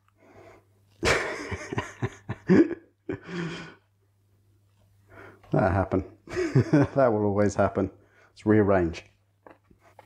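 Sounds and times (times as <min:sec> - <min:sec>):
man laughing: 0:01.0 - 0:03.6, 0:06.3 - 0:07.2.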